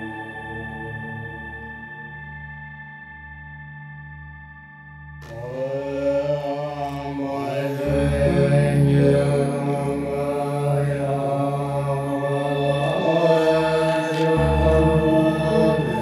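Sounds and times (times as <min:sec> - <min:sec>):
pulsing low drone: 0:00.0 - 0:16.0
low chanting voices: 0:05.2 - 0:16.0.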